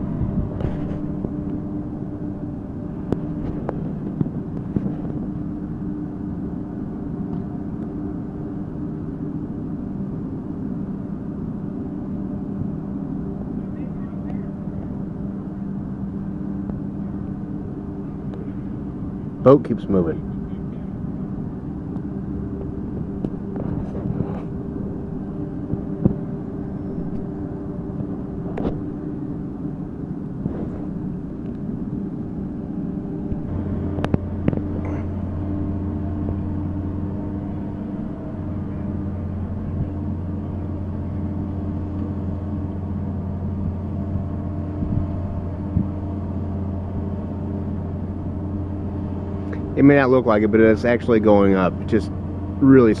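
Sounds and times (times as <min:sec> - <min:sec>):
boat lift machinery running: 0:00.0 - 0:53.0
deeper hum: 0:00.0 - 0:53.0.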